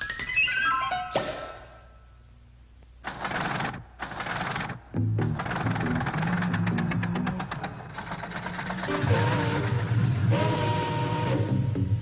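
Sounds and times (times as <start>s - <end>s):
mechanical clatter: 3.0s - 9.2s.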